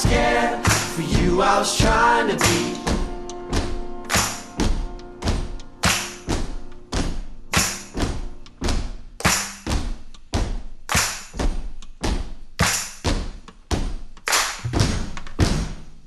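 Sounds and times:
held instrument notes: 0:00.0 - 0:08.8
drum kit playing a heavy beat: 0:00.0 - 0:16.0.

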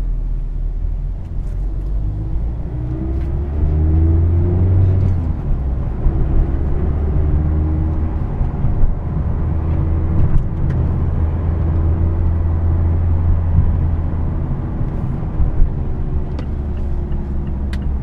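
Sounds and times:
car engine drone: 0:00.0 - 0:18.0
road noise inside car: 0:00.0 - 0:18.0.

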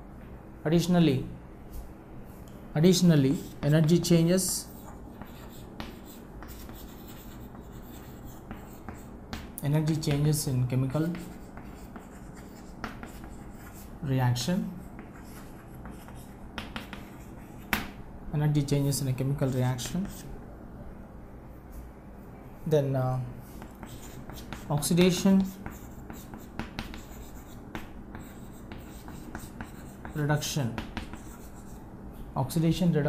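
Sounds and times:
chalk scratching on chalkboard: 0:03.3 - 0:09.2, 0:10.9 - 0:13.9, 0:14.8 - 0:17.8, 0:19.4 - 0:20.3, 0:23.4 - 0:31.8
chalk tapping: 0:03.3 - 0:13.9, 0:14.9 - 0:17.9, 0:19.5 - 0:20.3, 0:23.5 - 0:31.8.

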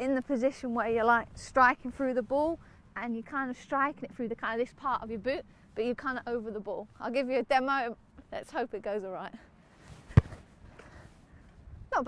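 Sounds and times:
boot kicking football: 0:10.0 - 0:10.5.

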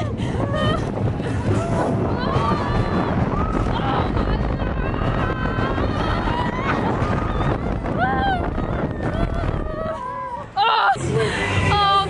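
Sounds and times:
wind rushing over microphone: 0:00.0 - 0:10.6.

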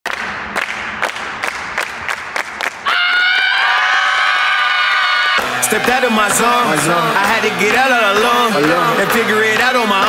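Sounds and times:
rhythmic clapping: 0:00.1 - 0:03.9, 0:04.7 - 0:10.0
group cheering: 0:02.8 - 0:10.0.

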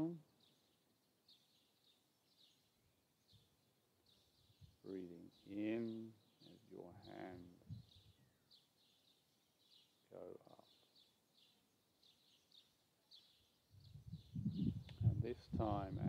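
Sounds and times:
small bird chirping: 0:00.0 - 0:16.0.

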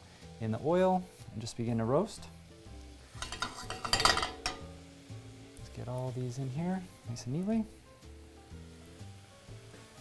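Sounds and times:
faint music with held notes: 0:00.0 - 0:10.0
mushrooms sizzling in oil: 0:00.0 - 0:10.0.

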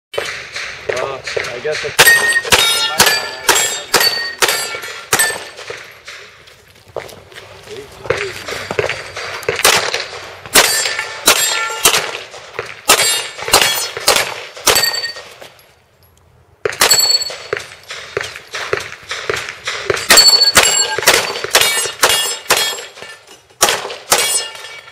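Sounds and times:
rapid pistol shots: 0:00.2 - 0:06.4, 0:08.4 - 0:15.3, 0:16.6 - 0:24.7
steel targets ringing: 0:01.8 - 0:05.7, 0:10.6 - 0:12.1, 0:12.9 - 0:14.0, 0:14.7 - 0:15.4, 0:16.8 - 0:17.6, 0:19.9 - 0:24.9.

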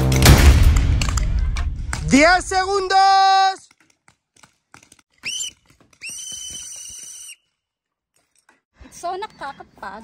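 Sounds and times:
whistle blasts: 0:05.2 - 0:07.5.

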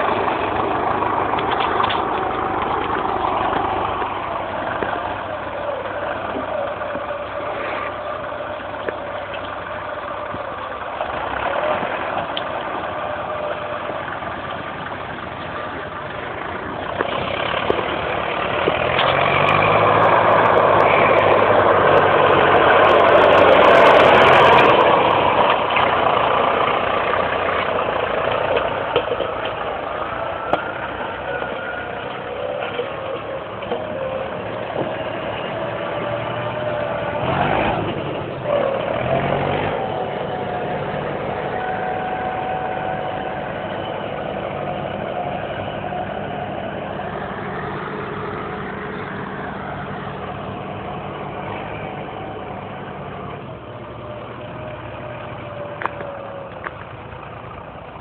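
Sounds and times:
tractor diesel engine running: 0:00.0 - 0:58.0.

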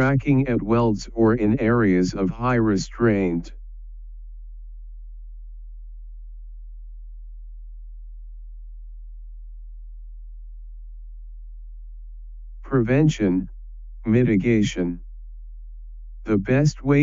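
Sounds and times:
very low-pitched hum: 0:00.0 - 0:17.0.

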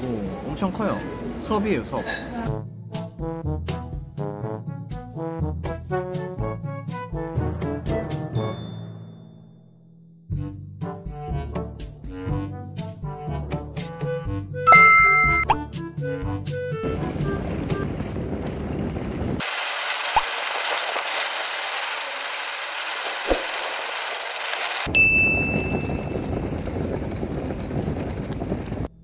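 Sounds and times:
bright notification chime: 0:14.7 - 0:15.6
short high ping: 0:14.7 - 0:15.6.

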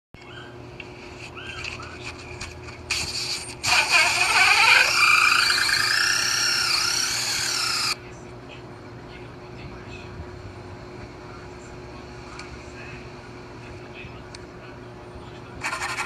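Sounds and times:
cordless drill cutting wood: 0:03.7 - 0:08.0.

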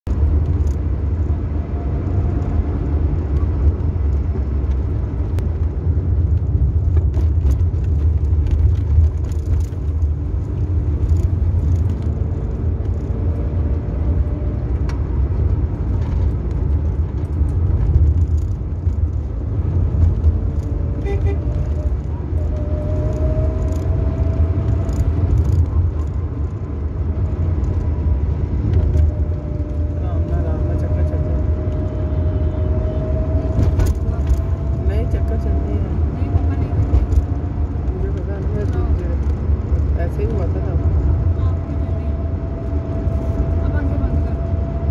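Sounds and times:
car engine and tyres rumbling: 0:00.0 - 0:44.9.

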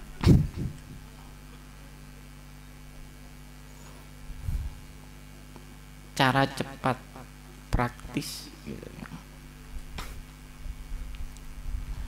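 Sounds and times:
electrical mains hum: 0:00.0 - 0:12.0
person speaking: 0:06.2 - 0:09.4.

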